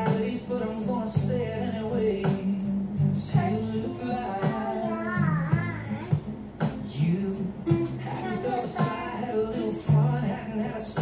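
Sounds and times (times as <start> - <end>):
country song playing: 0.0 - 11.0
toddler singing wordlessly: 3.3 - 6.3, 7.8 - 9.9.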